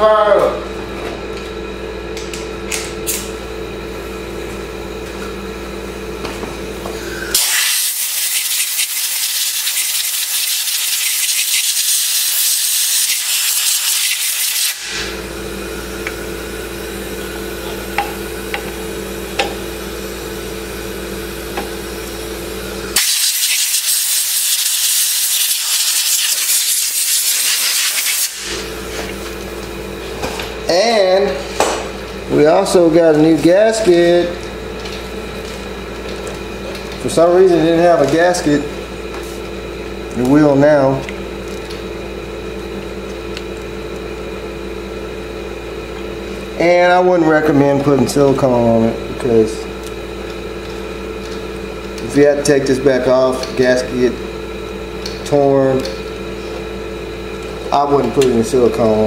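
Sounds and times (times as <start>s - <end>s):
compressed air blow gun hissing: 7.3s - 15.0s.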